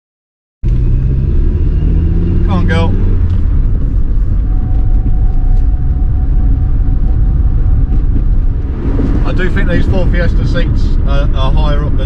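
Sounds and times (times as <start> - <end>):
car engine rumbling: 0.6 - 12.0
faint whine: 3.4 - 12.0.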